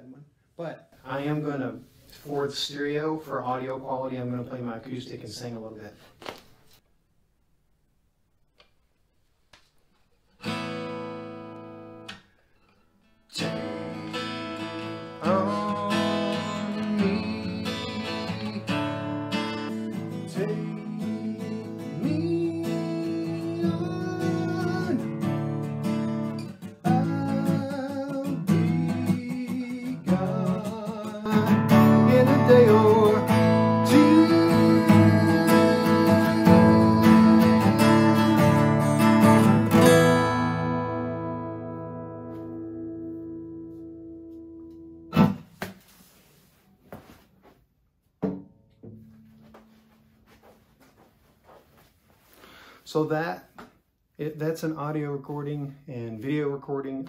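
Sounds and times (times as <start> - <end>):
acoustic guitar strumming: 10.4 - 45.6, 48.3 - 51.0
man singing: 13.4 - 25.4, 26.8 - 39.4.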